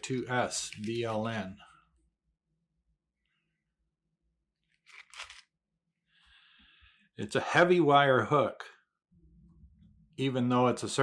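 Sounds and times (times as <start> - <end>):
plastic packet crinkling: 4.8 - 5.4.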